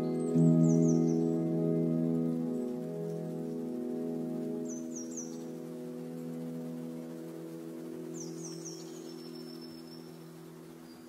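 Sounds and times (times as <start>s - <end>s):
low ambient music chord: 0.0s - 11.0s.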